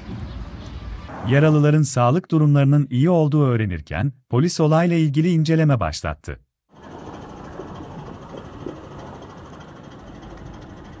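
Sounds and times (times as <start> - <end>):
idling vehicle engine hum: 6.7 - 11.0.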